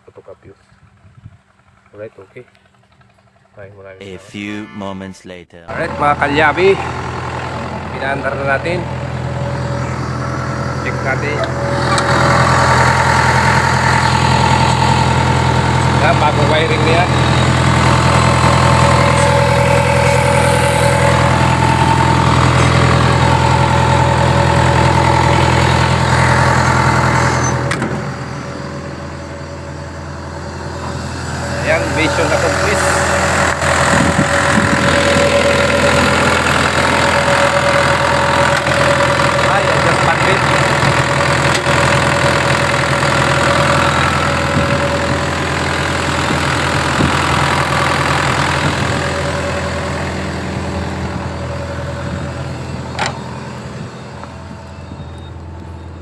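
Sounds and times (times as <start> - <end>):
excavator diesel engine idling: 0.0 - 4.6, 5.7 - 56.0.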